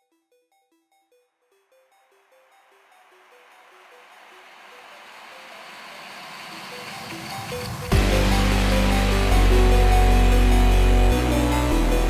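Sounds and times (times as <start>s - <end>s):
soft repeating synth melody: 0.0s - 12.0s.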